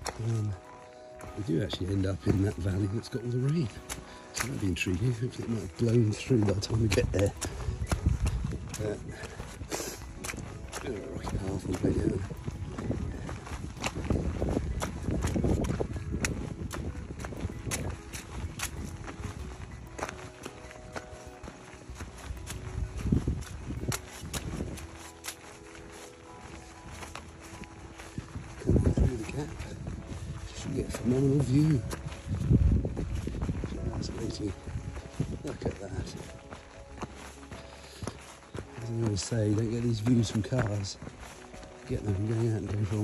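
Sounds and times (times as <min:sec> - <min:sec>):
footsteps on stony path: 0:00.0 - 0:43.0
wind gusting on microphone: 0:06.4 - 0:21.2, 0:21.8 - 0:25.0, 0:26.3 - 0:37.0.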